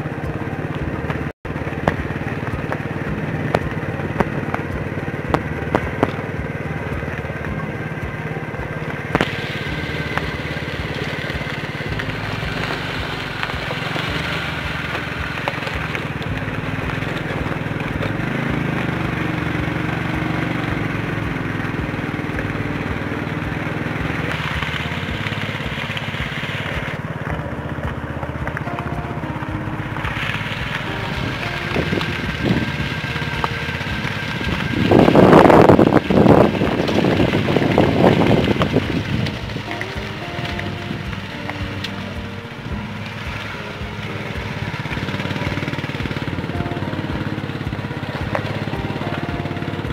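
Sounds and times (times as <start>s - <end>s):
motorcycle engine running: 0.0s - 49.9s.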